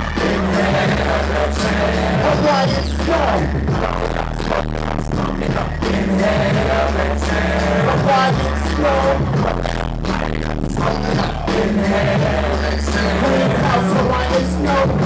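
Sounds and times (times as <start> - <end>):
hip hop beat with bass: 0.0 - 15.0
person rapping: 0.0 - 15.0.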